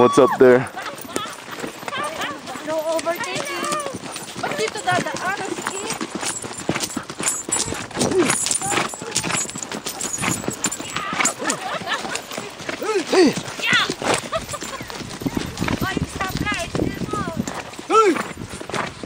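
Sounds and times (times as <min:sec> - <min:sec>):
people talking: 0:00.0 - 0:06.0, 0:08.1 - 0:09.4, 0:10.8 - 0:11.9, 0:12.8 - 0:14.0, 0:14.8 - 0:18.2
horse hooves on dirt: 0:00.0 - 0:19.0.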